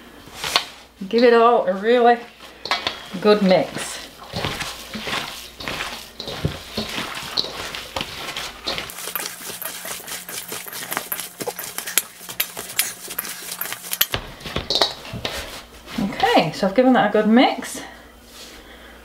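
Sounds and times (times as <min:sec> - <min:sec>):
hands kneading wet ground meat: 0:01.6 - 0:16.5
meat clicking against metal bowl: 0:04.3 - 0:15.0.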